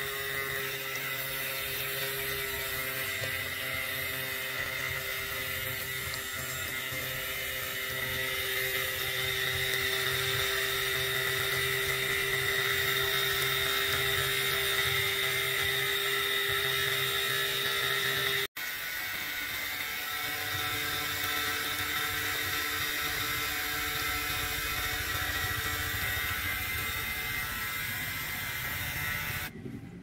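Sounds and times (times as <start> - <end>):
small pump motor whining: 0.0 - 30.0.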